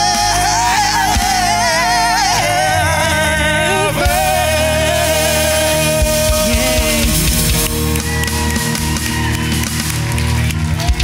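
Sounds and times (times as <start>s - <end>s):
live worship band playing: 0.0s - 11.0s.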